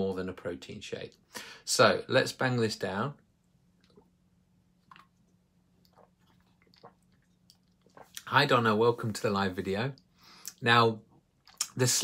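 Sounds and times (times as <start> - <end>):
wet mouth clicks and lip smacks: 4.8 - 5.2, 5.8 - 8.3, 11.4 - 11.8.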